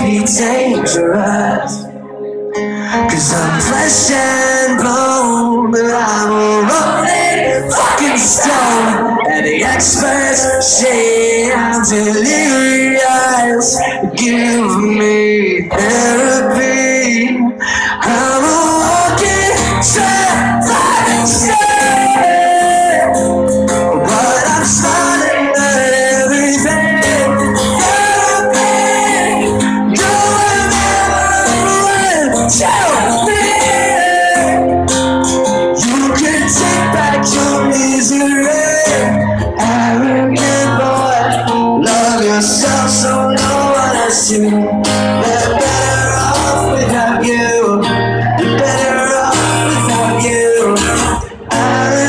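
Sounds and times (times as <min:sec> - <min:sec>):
acoustic guitar strumming: 0:00.0 - 0:52.0
man singing: 0:00.0 - 0:52.0.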